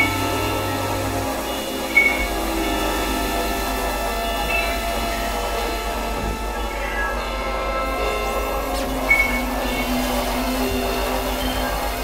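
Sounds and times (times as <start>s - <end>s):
electronic droning tones: 0.0s - 12.0s
low hum: 0.0s - 12.0s.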